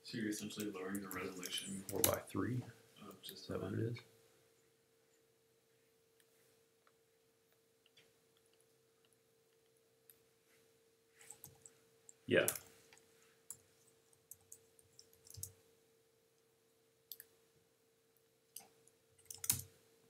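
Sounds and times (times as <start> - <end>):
faint steady hum: 0.0 - 20.0
keyboard and mouse clicks: 0.6 - 2.2, 14.3 - 15.6, 17.1 - 17.3, 18.5 - 19.7.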